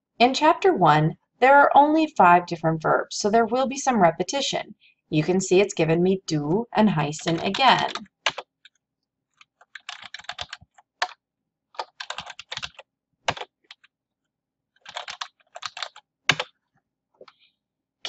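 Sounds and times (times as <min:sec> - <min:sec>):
computer keyboard typing: 0:07.0 - 0:08.7, 0:09.4 - 0:11.2, 0:11.8 - 0:13.9, 0:14.8 - 0:16.5.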